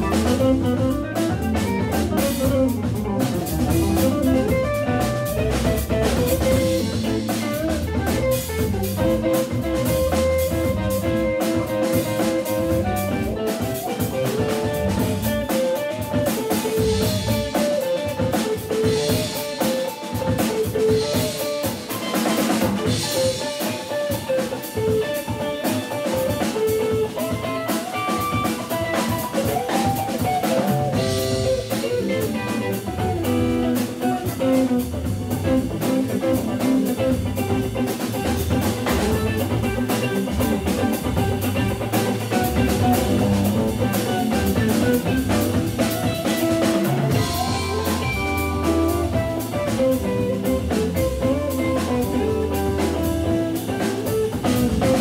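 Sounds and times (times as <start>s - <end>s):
drum kit: 0.0s - 55.0s
electric guitar: 0.0s - 55.0s.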